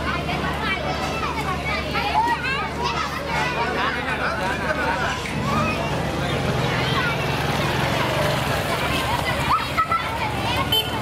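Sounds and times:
babble of voices: 0.0s - 11.0s
children calling and chattering: 0.0s - 11.0s.

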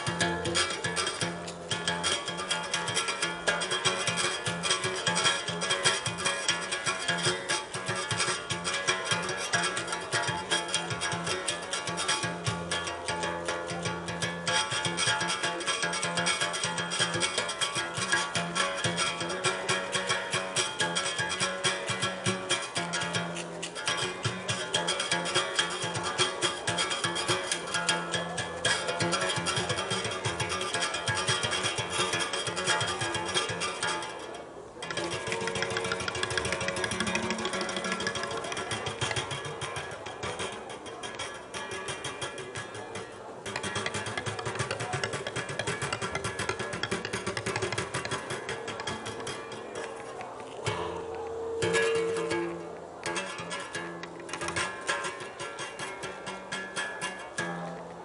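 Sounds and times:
berimbau playing: 0.0s - 58.0s.

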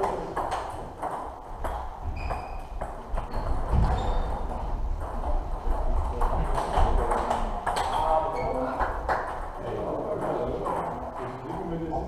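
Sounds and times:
table tennis balls clicking: 0.0s - 11.1s.

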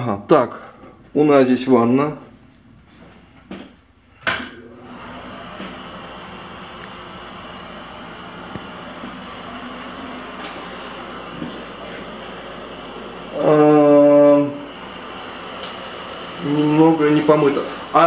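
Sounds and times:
exhaust fan humming: 0.0s - 18.0s.

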